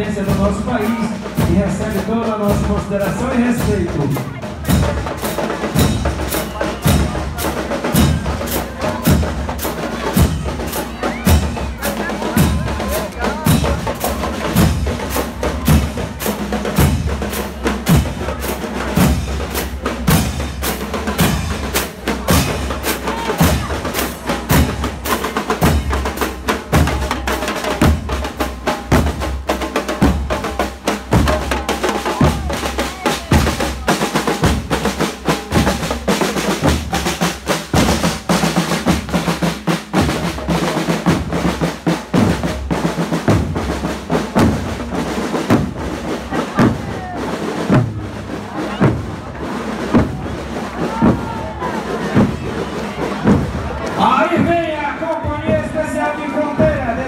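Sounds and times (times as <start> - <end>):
marching band percussion: 0.0 - 57.0.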